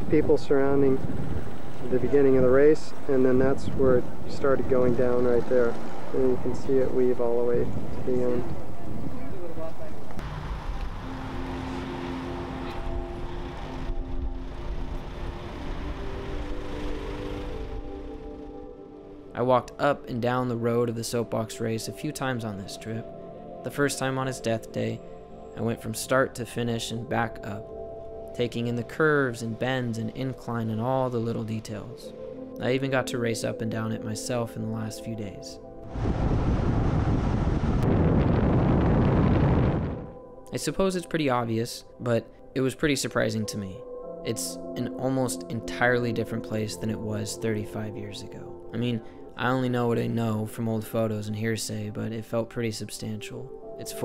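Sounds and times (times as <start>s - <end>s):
wind buffeting microphone: 0.0s - 9.5s, 35.8s - 40.2s
soft music of held chords: 0.0s - 54.0s
car rumbling along road: 10.0s - 18.2s.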